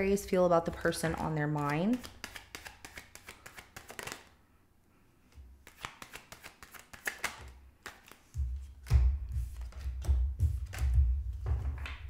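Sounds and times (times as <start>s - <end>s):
cards being shuffled: 0.6s - 4.4s, 5.3s - 12.0s
cards slapping onto wooden table: 1.9s - 4.3s, 5.7s - 11.0s.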